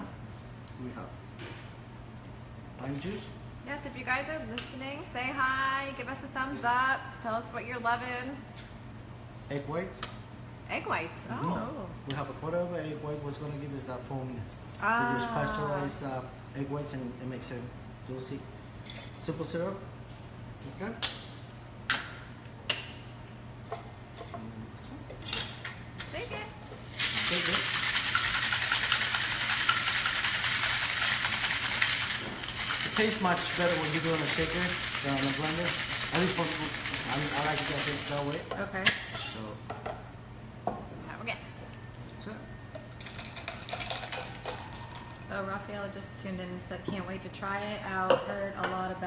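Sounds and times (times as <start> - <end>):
cocktail shaker rattling: 26.9 - 38.4.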